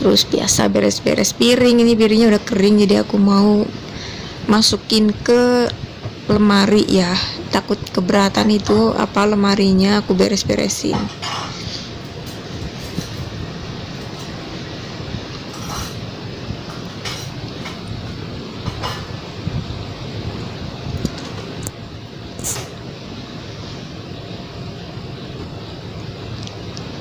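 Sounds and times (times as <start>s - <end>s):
steady rushing noise: 0.0s - 27.0s.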